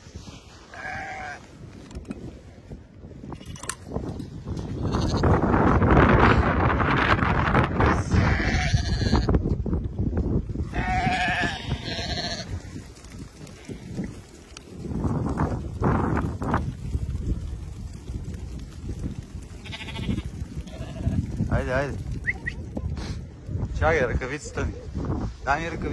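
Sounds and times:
sheep bleating: 0:00.7 - 0:01.5, 0:04.8 - 0:05.4, 0:08.1 - 0:09.3, 0:10.7 - 0:12.6, 0:19.6 - 0:21.2.

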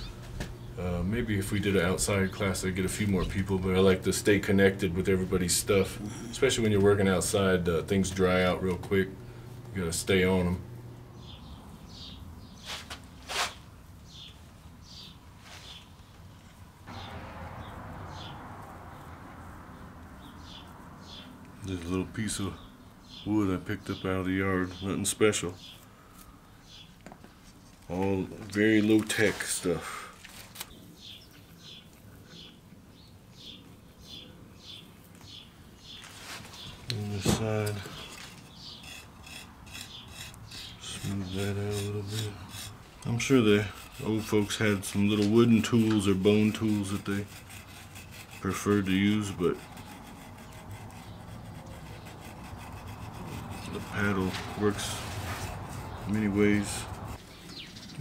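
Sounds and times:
small birds chirping: 0:00.0 - 0:58.0
wood scraping clay pot: 0:35.8 - 0:58.0.

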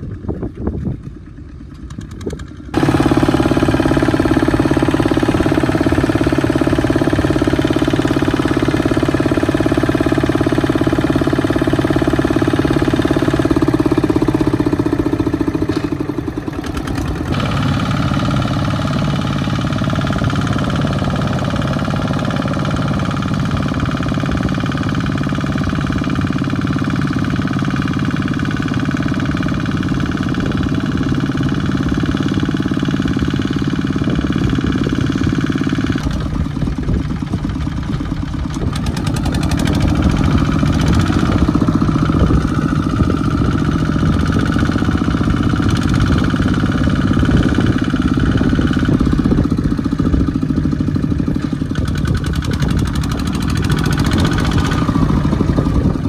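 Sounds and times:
diesel tractor engine running: 0:00.0 - 0:56.0.

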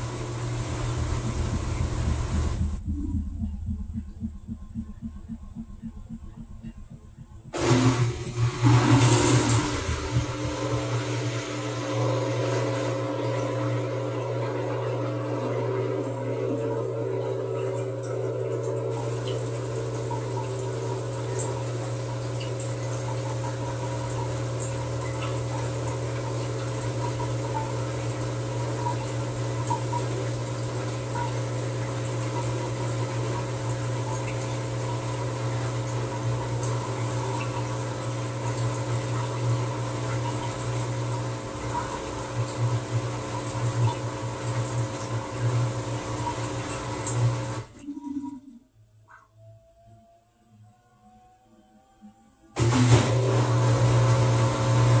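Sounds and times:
water rushing into washer drum: 0:00.0 - 0:48.6, 0:52.6 - 0:55.0
washing machine hum: 0:00.0 - 0:50.1, 0:51.0 - 0:55.0.

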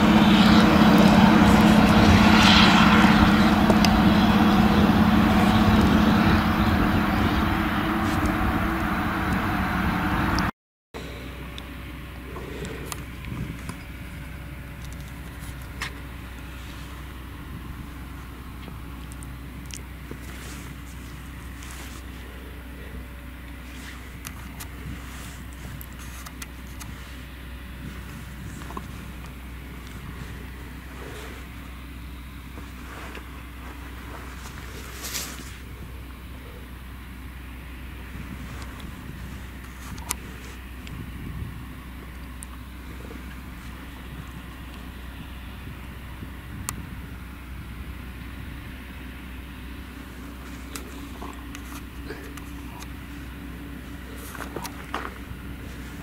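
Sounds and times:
harvester engine drone: 0:00.0 - 0:56.0.

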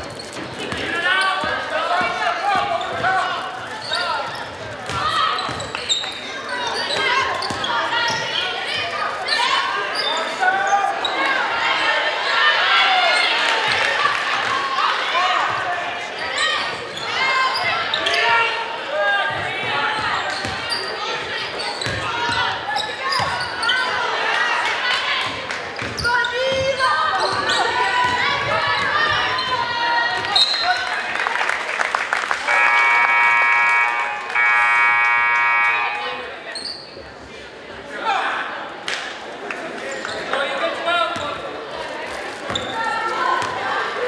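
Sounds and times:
sneakers squeaking: 0:00.0 - 0:11.4, 0:15.5 - 0:18.7, 0:19.3 - 0:24.0, 0:25.2 - 0:30.9, 0:32.5 - 0:37.3, 0:42.4 - 0:43.6
voices calling in echoing hall: 0:00.0 - 0:44.0
scoreboard buzzer: 0:32.5 - 0:36.2.

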